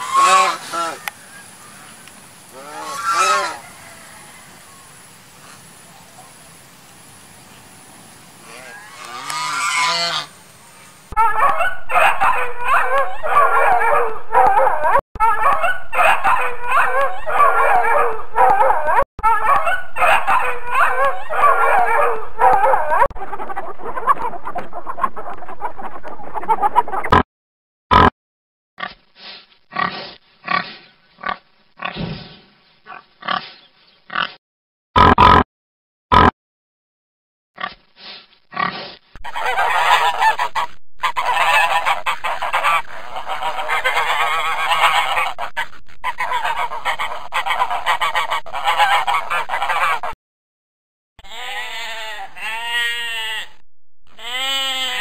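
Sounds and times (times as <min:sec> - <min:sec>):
dense chorus of animal calls: 0:00.0 - 0:01.9, 0:02.5 - 0:06.4, 0:08.4 - 0:10.4, 0:11.1 - 0:25.6, 0:38.5 - 0:50.2, 0:51.2 - 0:53.5, 0:54.1 - 0:55.0
swan calling: 0:00.0 - 0:01.9, 0:02.5 - 0:04.2, 0:08.4 - 0:14.5, 0:39.2 - 0:50.1.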